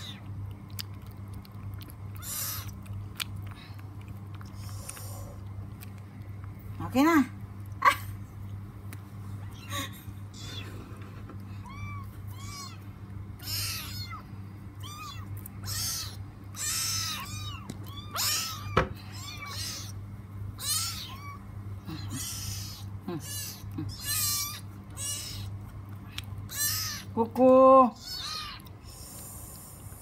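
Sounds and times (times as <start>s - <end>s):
kitten mewing: 0.0s - 0.4s, 1.5s - 3.6s, 9.4s - 10.9s, 11.5s - 20.0s, 20.6s - 27.2s, 27.9s - 29.1s.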